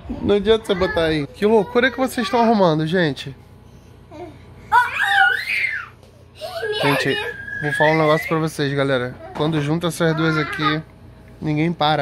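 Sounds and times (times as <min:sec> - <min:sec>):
child squealing in play: 0:04.7 - 0:08.6.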